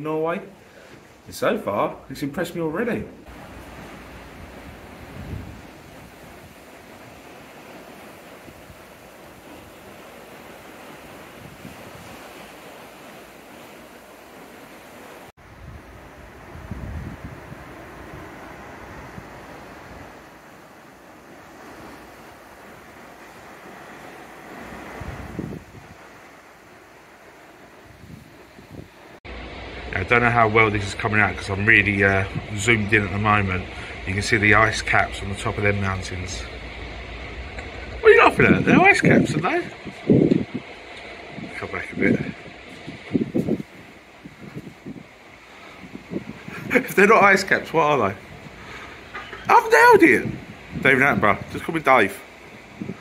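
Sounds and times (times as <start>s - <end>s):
sea water rushing in wake: 0.0s - 53.0s
wind on microphone: 3.3s - 12.8s, 15.4s - 20.6s, 21.2s - 26.4s, 27.7s - 51.7s, 52.4s - 53.0s.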